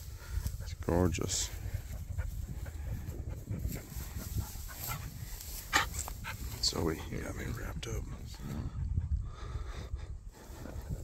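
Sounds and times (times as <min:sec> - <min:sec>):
steady low rumble: 0:00.0 - 0:11.0
dog panting: 0:00.1 - 0:06.7.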